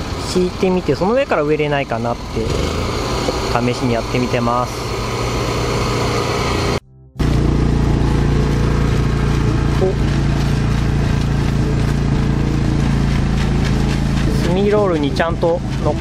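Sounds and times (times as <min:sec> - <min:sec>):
engine low hum: 0:00.0 - 0:16.0.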